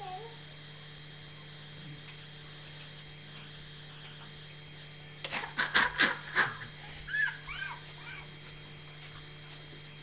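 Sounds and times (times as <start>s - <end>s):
dog whimpering: 6.4s - 8.4s
scuffling noises: 6.8s - 9.9s.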